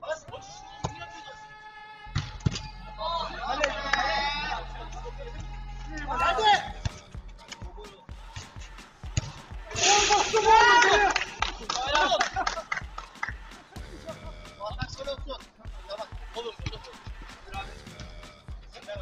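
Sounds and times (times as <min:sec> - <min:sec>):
background music: 0:00.0 - 0:19.0
men shouting: 0:00.0 - 0:19.0.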